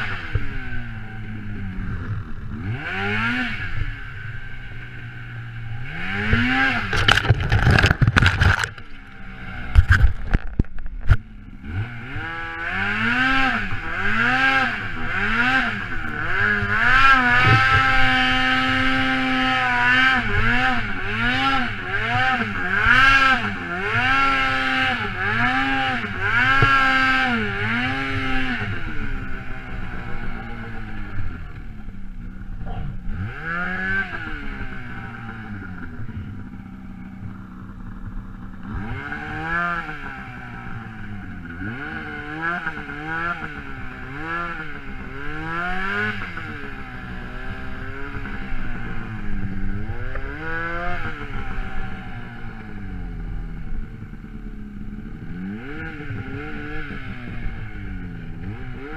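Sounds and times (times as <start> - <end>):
snowmobile engine revving: 0.0 - 10.4, 11.3 - 58.9.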